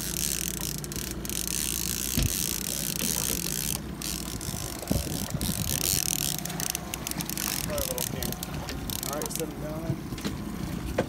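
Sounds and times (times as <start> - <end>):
fishing reel clicking: 0.0 - 9.5
boat engine humming: 0.0 - 11.0.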